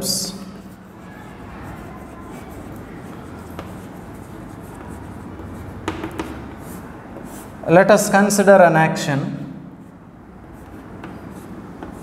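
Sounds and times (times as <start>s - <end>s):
chalk scratching on chalkboard: 0.1s - 7.6s, 10.5s - 12.0s
chalk tapping on chalkboard: 0.8s - 7.6s, 10.6s - 12.0s.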